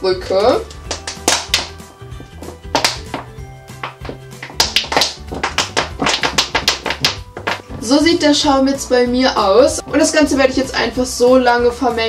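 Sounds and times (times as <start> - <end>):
background music: 0.0 - 12.0
plastic bottle crackling: 0.6 - 8.0.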